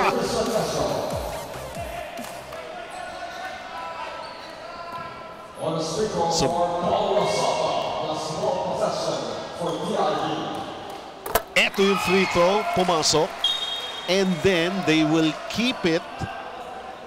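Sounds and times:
echoing voices of players and crowd: 0.0s - 17.0s.

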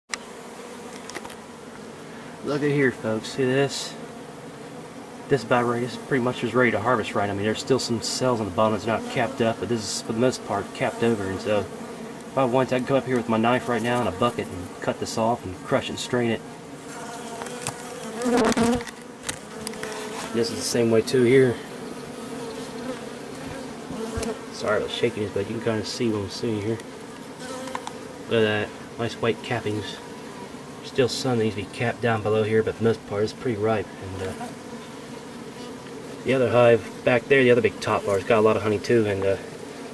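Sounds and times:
bees buzzing: 0.1s - 39.9s
faint ticks: 26.8s - 28.0s.

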